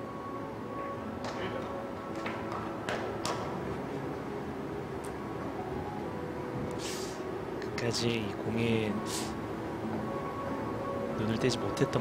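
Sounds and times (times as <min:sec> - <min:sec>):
background music: 0:00.0 - 0:12.0
hall background noise: 0:00.0 - 0:12.0.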